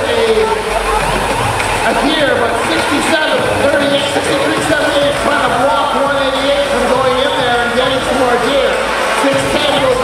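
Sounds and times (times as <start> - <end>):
background music: 0.0 - 10.0
hubbub of a large hall: 0.0 - 10.0
man speaking over loudspeakers: 0.0 - 10.0.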